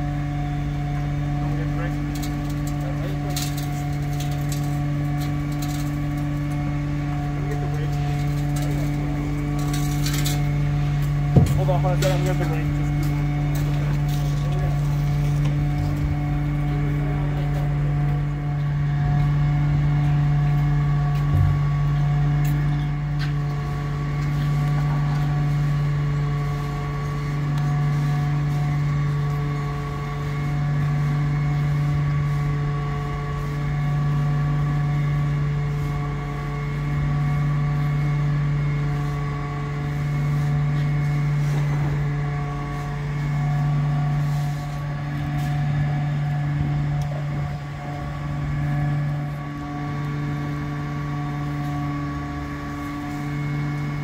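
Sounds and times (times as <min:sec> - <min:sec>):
heavy vehicle engine idling: 0:00.0 - 0:54.0.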